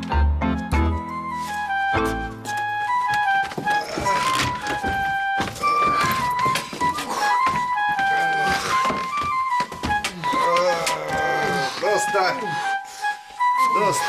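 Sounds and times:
wooden recorder melody: 0:00.0 - 0:14.0.

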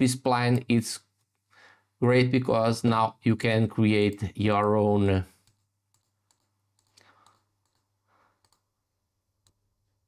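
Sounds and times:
computer mouse clicks: 0:05.4 - 0:08.7.

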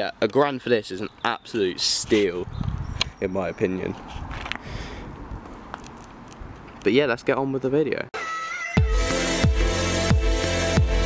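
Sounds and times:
outdoor background noise: 0:00.0 - 0:08.1.

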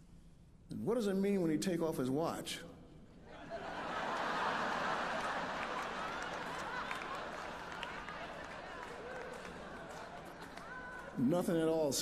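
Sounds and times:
large audience laughing: 0:03.3 - 0:10.4.

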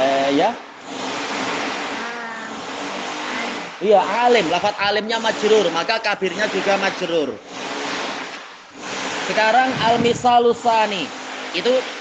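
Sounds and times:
steady rushing noise: 0:00.9 - 0:11.9.

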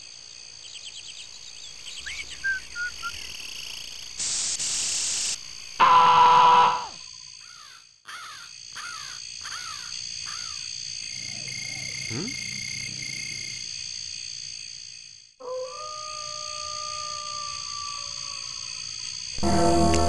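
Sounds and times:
harsh animal call: 0:05.8 - 0:07.0.

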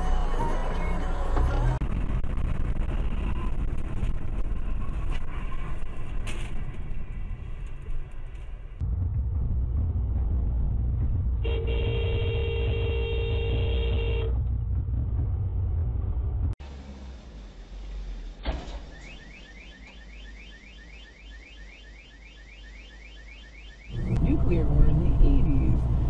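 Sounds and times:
car horn blast: 0:11.4 - 0:14.3
road and engine noise inside car: 0:23.9 - 0:26.0.

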